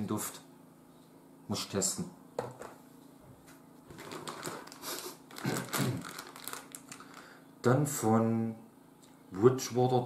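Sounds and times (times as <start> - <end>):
plastic packaging crinkling: 3.9 - 7.4.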